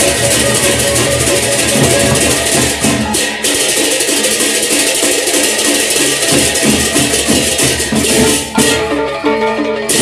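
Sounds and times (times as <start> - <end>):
deep barrel drum beats: 0.0 - 9.0.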